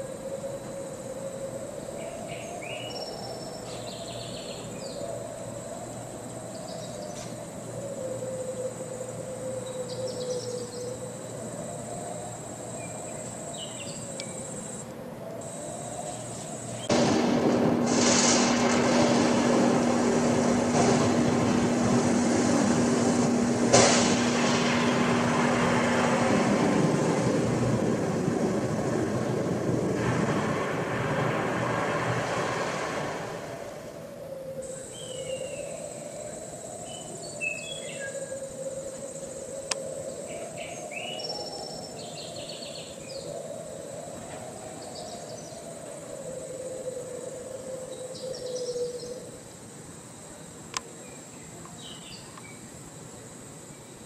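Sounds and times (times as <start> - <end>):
long wavering whine: 0.0 - 49.5
crickets chirping: 0.0 - 54.0
loud steady rumble: 15.5 - 34.0
sharp cracks: 16.9 - 33.6.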